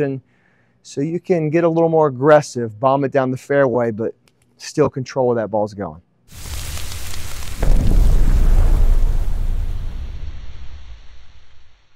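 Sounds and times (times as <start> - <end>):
deep boom with rumble: 7.4 - 11.9.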